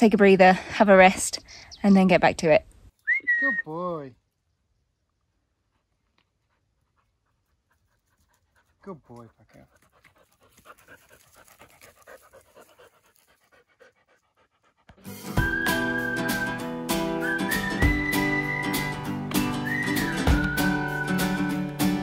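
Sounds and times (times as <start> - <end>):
dog panting: 6.4 - 15.1
plucked guitar music: 15.0 - 22.0.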